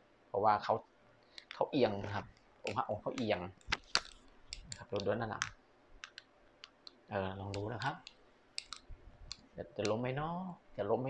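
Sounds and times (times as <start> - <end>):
amulet clicking on hard surface: 2.7 - 10.0.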